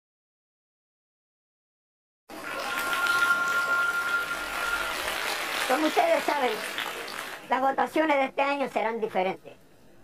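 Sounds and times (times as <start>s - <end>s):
high electronic tone: 2.4s - 5.0s.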